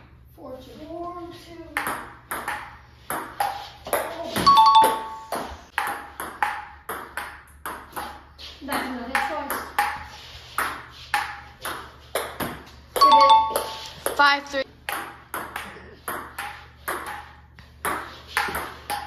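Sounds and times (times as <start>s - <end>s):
ping pong ball hitting paddles: 1.7s - 19.0s.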